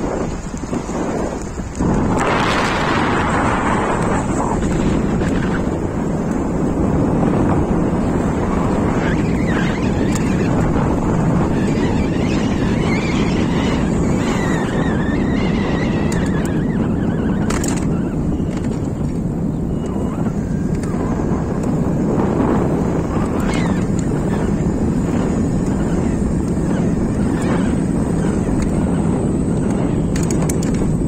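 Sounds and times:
road noise: 0.0 - 31.0
wind buffeting microphone: 0.0 - 31.0
faint wavering whistle: 19.6 - 20.6.

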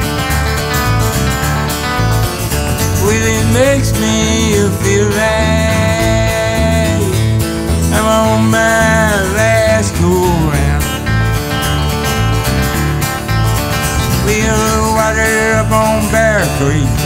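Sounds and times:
acoustic guitar: 0.0 - 17.0
country song: 0.0 - 17.0.

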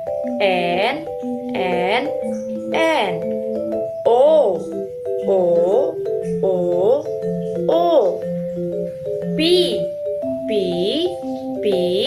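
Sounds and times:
backing track of held notes: 0.0 - 12.0.

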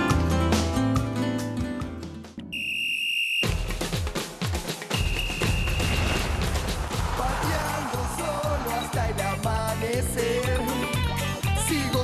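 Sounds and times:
whistle blast: 2.5 - 3.7, 4.9 - 6.4
lively music with drums: 3.4 - 12.0.

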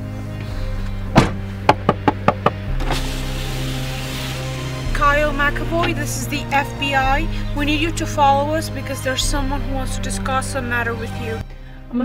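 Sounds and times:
electric power window motor: 0.0 - 6.4
background music: 0.0 - 12.0
knocks on car window glass: 1.2 - 2.6.

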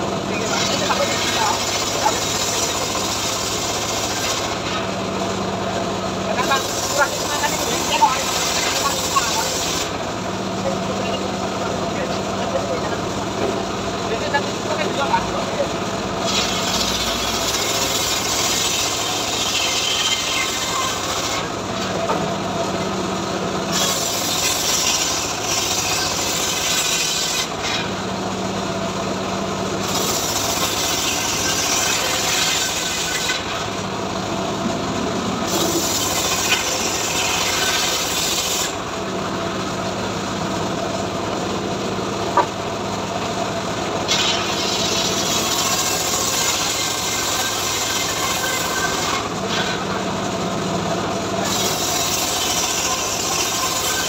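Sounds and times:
saw blade cutting wood: 0.0 - 5.0, 6.3 - 10.0, 16.2 - 22.3, 23.7 - 28.1, 29.8 - 33.8, 35.4 - 38.9, 42.3 - 42.6, 44.0 - 50.1, 51.4 - 54.0.

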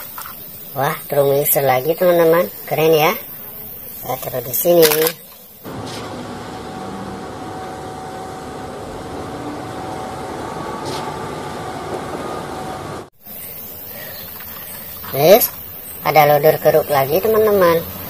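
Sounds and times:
street traffic: 0.0 - 18.0
diesel truck engine running: 5.6 - 13.1.

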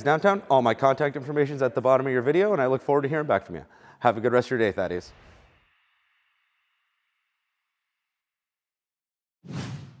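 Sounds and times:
whoosh sound effect: 9.5 - 10.0.

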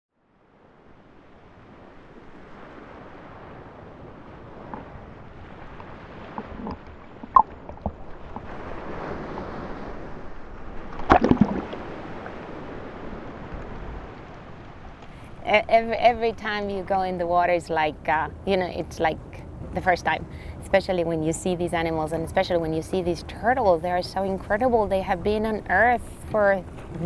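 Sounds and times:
sea water lapping: 0.4 - 27.0
water splashing: 2.3 - 17.5, 22.1 - 27.0.

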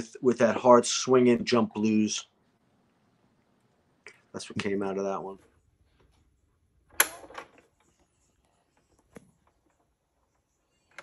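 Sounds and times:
stylus click on vinyl record: 6.9 - 11.0.

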